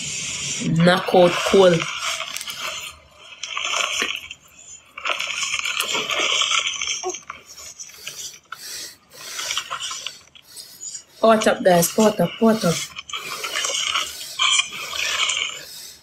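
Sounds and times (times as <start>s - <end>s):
plastic bag crinkling: 1.2s - 8.3s.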